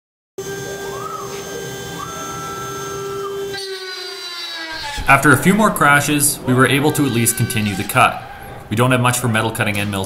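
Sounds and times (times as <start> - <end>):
milling spindle whine: 0.4 - 5.7.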